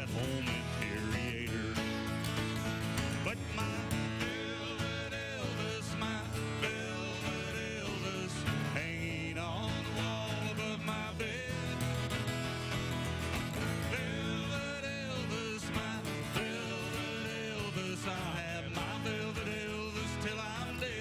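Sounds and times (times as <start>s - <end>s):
acoustic guitars strumming: 0.0s - 21.0s
guitar melody line: 0.0s - 21.0s.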